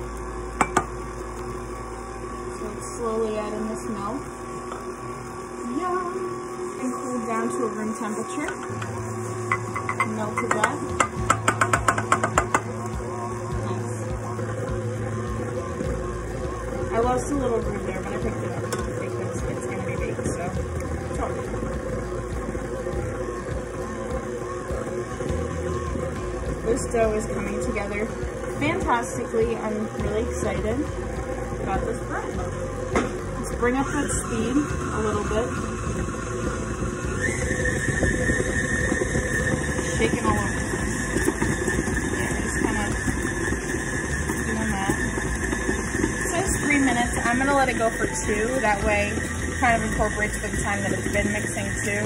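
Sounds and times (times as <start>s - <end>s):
stand mixer kneading dough: 0.0s - 52.0s
background music: 5.1s - 52.0s.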